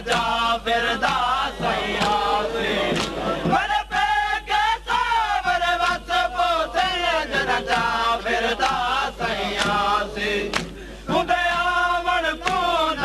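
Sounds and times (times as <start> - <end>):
crowd singing along: 0.0 - 13.0.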